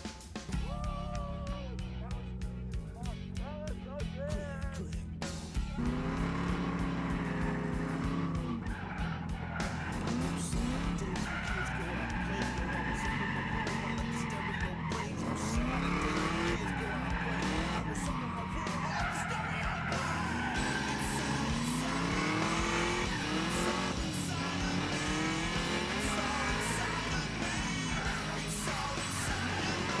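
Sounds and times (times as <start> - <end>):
car engine revving: 5.2 - 30.0
tires squealing and skidding: 5.8 - 30.0.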